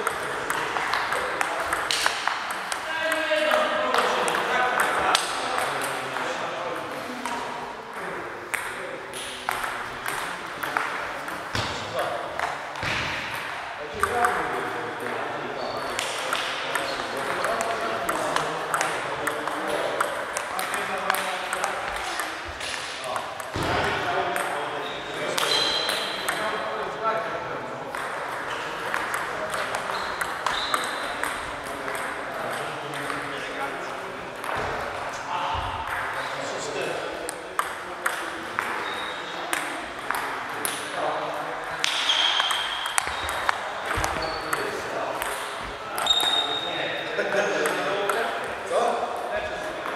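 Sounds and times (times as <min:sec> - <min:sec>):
table tennis balls clicking: 0:00.0 - 0:15.1, 0:15.8 - 0:23.6, 0:25.3 - 0:26.6, 0:27.9 - 0:33.5, 0:36.8 - 0:41.0, 0:41.6 - 0:46.5
murmur of voices: 0:00.0 - 0:49.9.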